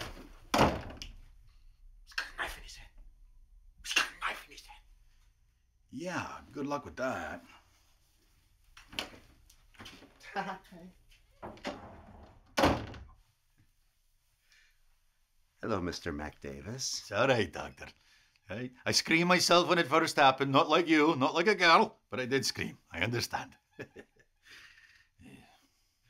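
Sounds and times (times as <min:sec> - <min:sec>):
door shutting with a thud: 0:00.0 - 0:01.0, 0:11.4 - 0:13.2.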